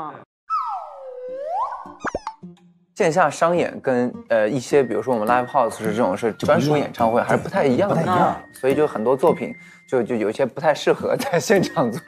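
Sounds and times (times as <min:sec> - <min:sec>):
quick rising pops: 0:00.5 - 0:02.4
swooping whistle tone: 0:00.5 - 0:02.4.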